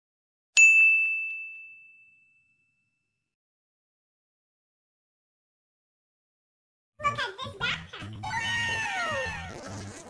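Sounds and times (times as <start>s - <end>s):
bell-like ding: 0.6s - 3.3s.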